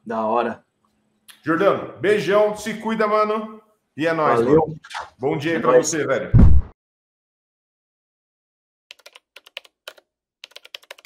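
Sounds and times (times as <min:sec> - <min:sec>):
computer keyboard typing: 0:08.9 - 0:11.0.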